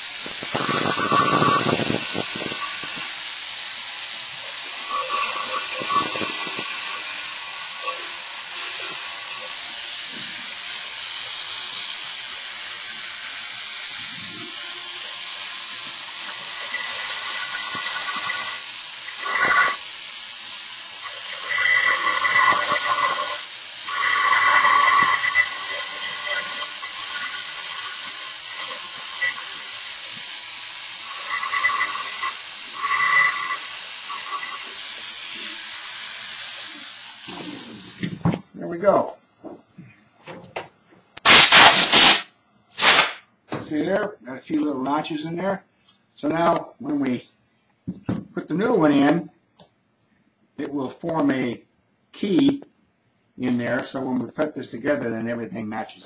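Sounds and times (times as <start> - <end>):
rotary tool grinding: 0.0 - 38.2.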